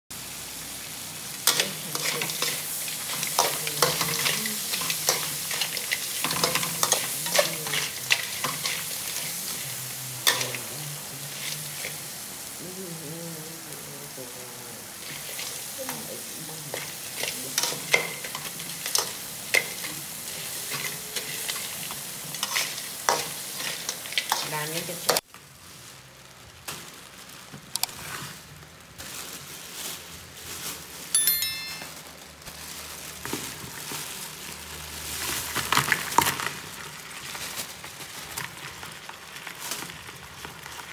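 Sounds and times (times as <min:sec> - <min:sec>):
crabs sizzling in pan: 0:00.1 - 0:31.5, 0:32.1 - 0:40.9.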